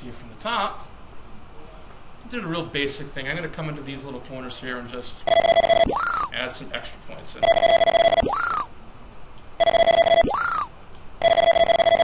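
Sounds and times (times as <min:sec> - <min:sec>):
buzzy electronic tone: 0:05.3 - 0:06.3, 0:07.4 - 0:08.7, 0:09.6 - 0:12.0
rising electronic chirp: 0:05.3 - 0:06.4, 0:07.4 - 0:08.7, 0:09.6 - 0:12.0.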